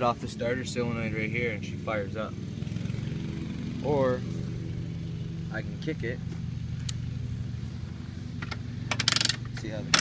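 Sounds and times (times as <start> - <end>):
engine idling steadily: 0.0 - 10.0.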